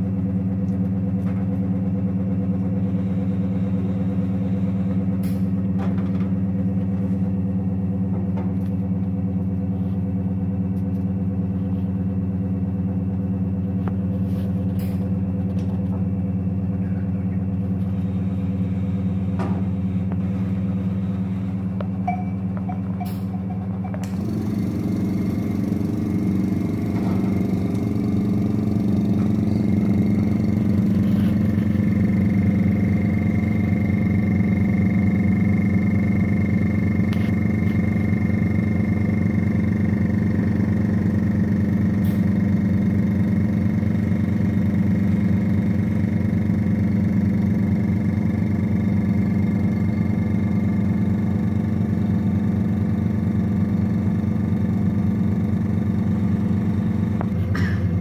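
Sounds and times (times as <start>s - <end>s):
vacuum pump motor hum: 0.0s - 58.0s.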